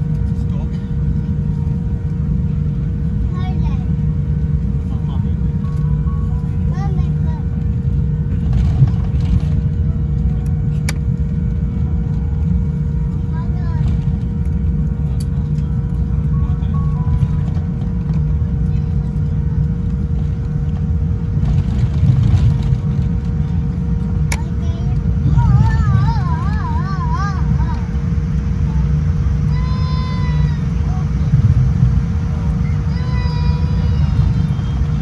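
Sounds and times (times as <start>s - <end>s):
aircraft engines rumbling: 0.0s - 35.0s
steady cabin hum: 0.0s - 35.0s.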